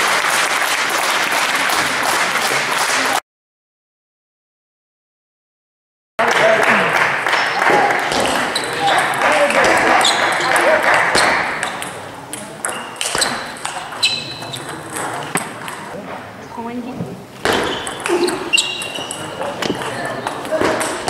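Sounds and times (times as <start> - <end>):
table tennis balls clicking: 7.6 - 16.0, 17.4 - 21.0
people talking: 7.6 - 17.2, 17.9 - 21.0.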